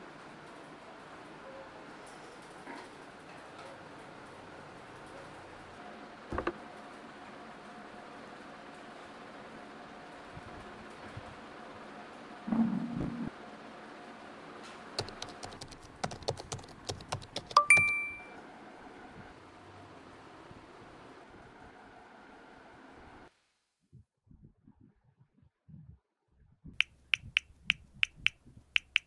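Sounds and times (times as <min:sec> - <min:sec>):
laptop keyboard typing: 0:15.0 - 0:18.3, 0:26.8 - 0:29.0
two-tone phone notification chime: 0:17.6 - 0:18.3.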